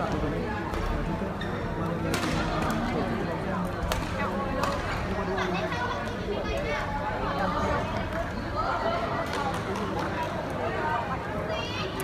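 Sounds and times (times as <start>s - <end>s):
chatter of voices: 0.0s - 12.0s.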